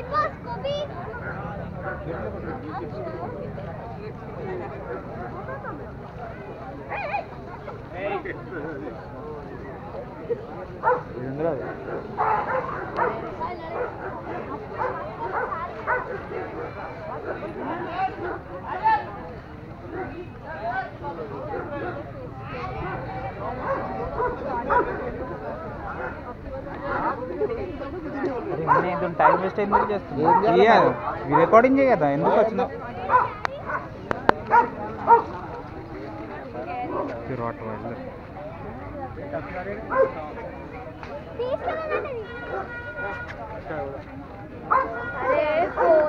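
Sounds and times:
people talking: 0:00.0 - 0:31.5, 0:32.1 - 0:46.0
dog barking: 0:10.8 - 0:17.5, 0:23.6 - 0:25.0, 0:28.6 - 0:31.6, 0:32.2 - 0:35.4, 0:36.9 - 0:37.2, 0:39.9 - 0:40.4, 0:41.9 - 0:42.8, 0:44.7 - 0:46.0.

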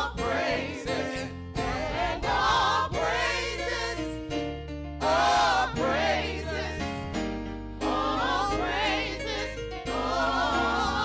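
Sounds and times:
electronic keyboard: 0:00.0 - 0:11.0
gospel group singing: 0:00.0 - 0:11.0
sustained low bass notes: 0:00.0 - 0:11.0.

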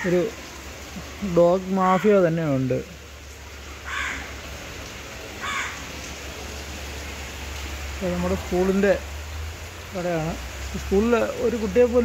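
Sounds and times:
rain hiss: 0:00.0 - 0:12.0
harsh animal calls: 0:03.8 - 0:04.4, 0:05.4 - 0:05.9.

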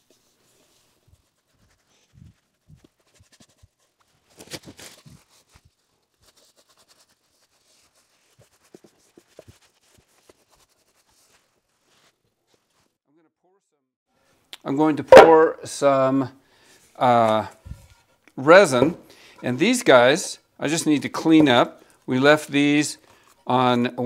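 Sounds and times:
soft pad rubbing: 0:00.0 - 0:04.0, 0:05.1 - 0:13.0.

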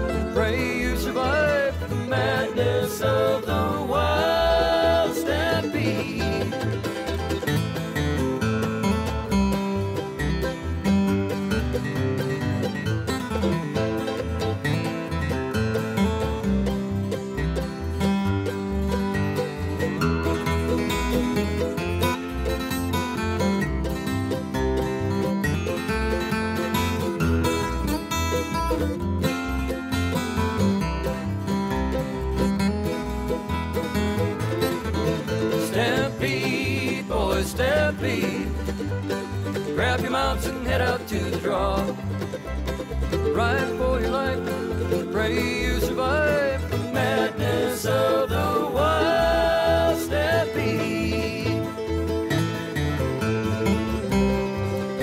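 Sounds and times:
acoustic guitar solo: 0:00.0 - 0:55.0
country band beat: 0:00.0 - 0:55.0.

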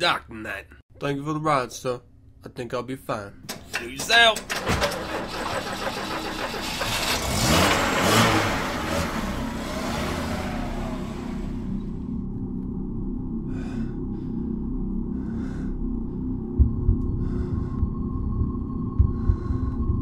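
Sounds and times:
car pulling away: 0:04.5 - 0:12.3
low steady drone: 0:08.4 - 0:20.0
low thumps: 0:16.5 - 0:20.0.

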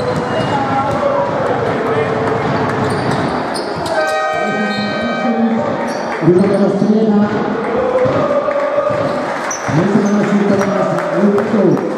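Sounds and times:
ball bounces: 0:00.0 - 0:01.4, 0:07.2 - 0:09.9
crowd voices: 0:00.0 - 0:11.9
shoe squeaks: 0:02.8 - 0:06.8.

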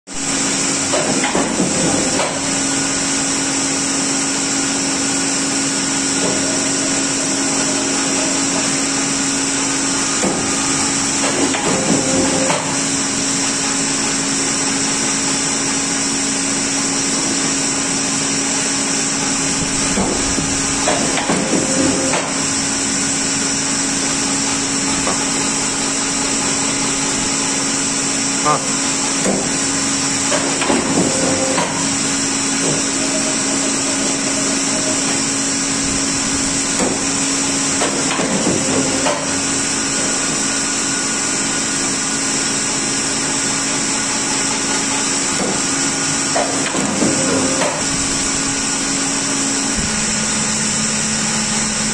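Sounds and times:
paper cutter motor hum: 0:00.2 - 0:51.9.

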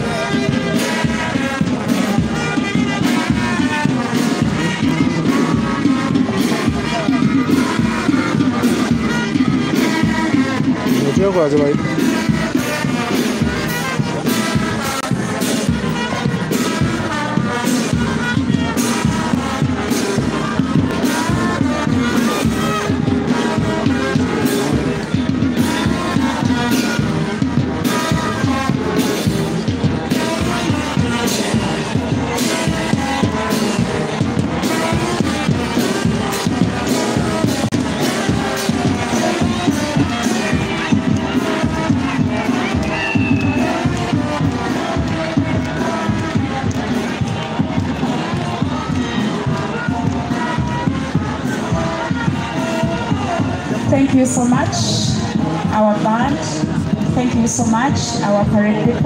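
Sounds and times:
brass marching band playing: 0:00.0 - 0:59.0
crowd noise: 0:00.0 - 0:59.0
steady drum beat: 0:00.0 - 0:59.0.

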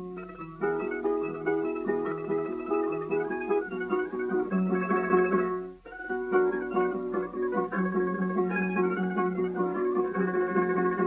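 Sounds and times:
plucked string ensemble: 0:00.0 - 0:11.0
rhythm guitar: 0:00.0 - 0:11.0.

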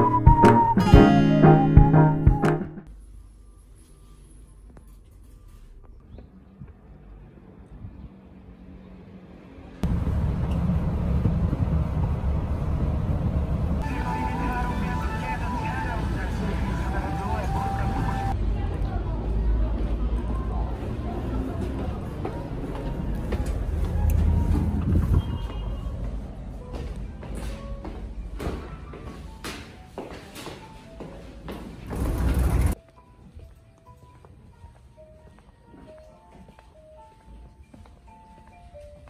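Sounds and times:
soft background music: 0:00.0 - 0:05.6, 0:13.8 - 0:18.4, 0:25.8 - 0:39.0
heavy traffic rumble: 0:05.7 - 0:28.4, 0:31.6 - 0:32.8.

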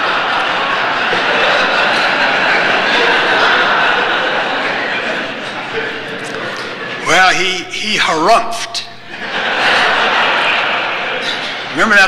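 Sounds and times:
audience laughing: 0:00.0 - 0:12.0.

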